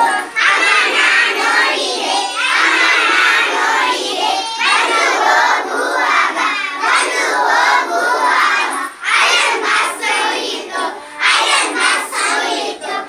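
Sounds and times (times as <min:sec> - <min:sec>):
children singing together: 0:00.0 - 0:13.0.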